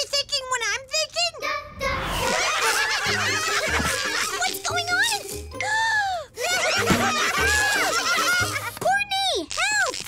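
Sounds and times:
bouncy background music: 1.4 - 9.2
cartoon voices giggling and laughing: 1.8 - 5.2, 5.8 - 9.0.

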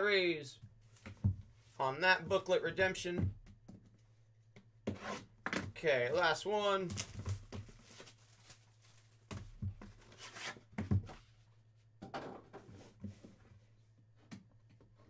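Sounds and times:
cardboard rustling: 6.9 - 11.2.

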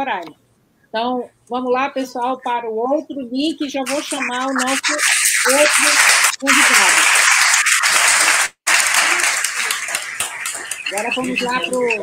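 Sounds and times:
person speaking: 3.8 - 7.1, 10.8 - 12.0
audience applauding: 3.9 - 12.0.

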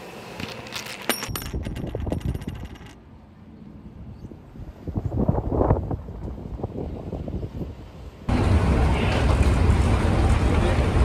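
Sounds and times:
small hard objects clinking: 0.4 - 3.0
wind rumble on microphone: 3.6 - 10.2.

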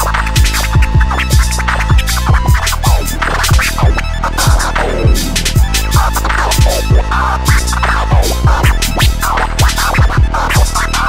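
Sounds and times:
deep kick drum beat: 0.0 - 10.8
turntable scratching: 0.0 - 11.0.

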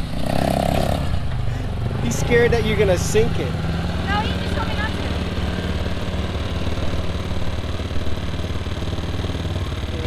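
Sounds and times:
vehicle engines idling: 0.0 - 10.0.

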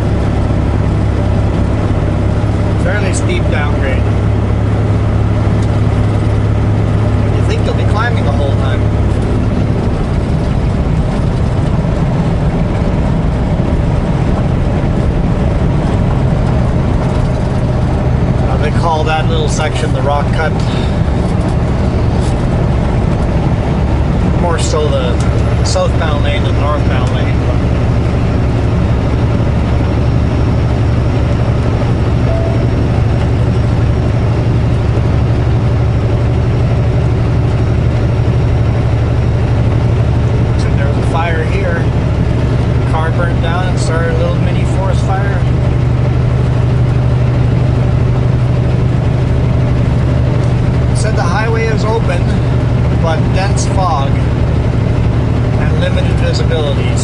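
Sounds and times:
diesel truck engine droning: 0.0 - 57.0
road noise: 0.0 - 57.0.

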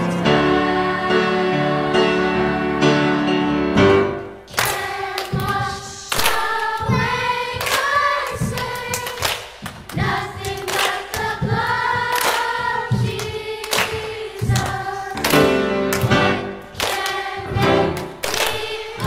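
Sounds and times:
choir singing a hymn: 0.0 - 19.0
piano: 0.0 - 19.0.

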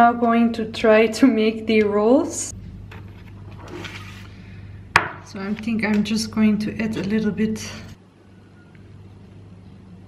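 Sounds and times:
steady low hum: 0.2 - 10.0.

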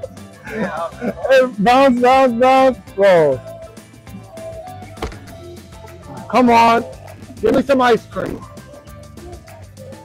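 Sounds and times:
background music: 0.0 - 10.0
golf club striking ball: 5.0 - 5.4.

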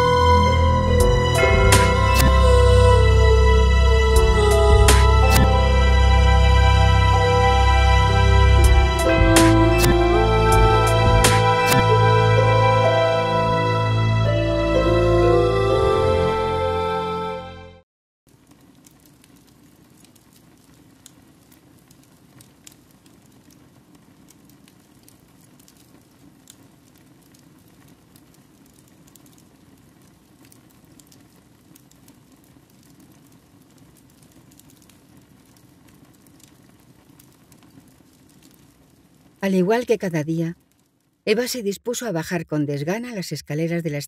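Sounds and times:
fire crackling and popping: 0.0 - 12.5, 18.3 - 41.8.

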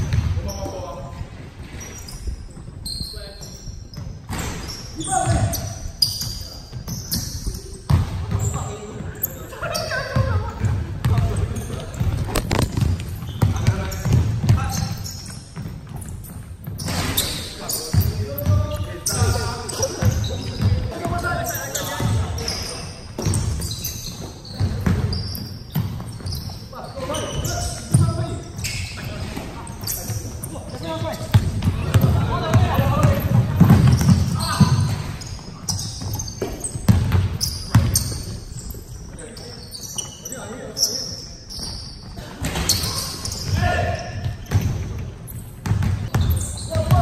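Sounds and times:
basketballs bouncing on hardwood: 0.0 - 1.8, 6.4 - 26.6, 27.2 - 38.5, 42.1 - 47.0.

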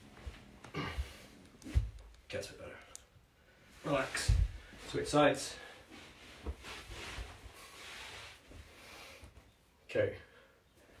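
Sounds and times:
cushion dragged across carpet: 5.9 - 8.6.

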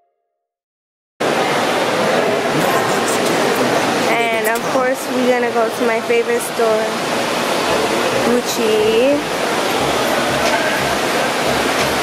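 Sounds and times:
steady rushing noise: 1.2 - 12.0.

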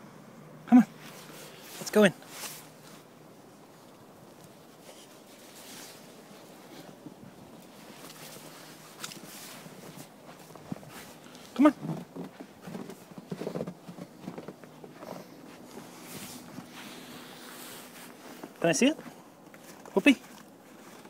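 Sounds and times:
person calling out: 0.7 - 0.9
footsteps crunching in snow: 1.0 - 21.0.

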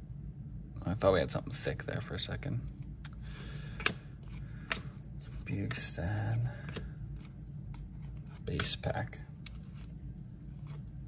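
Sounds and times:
trading cards flipped by hand: 2.7 - 5.9, 9.4 - 11.0
card edge snaps: 3.7 - 4.9.

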